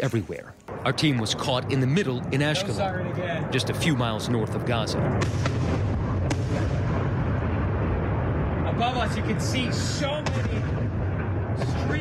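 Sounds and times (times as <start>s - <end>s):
rumbling of rocket blasts: 0.7s - 12.0s
sharp cracks: 5.1s - 7.0s.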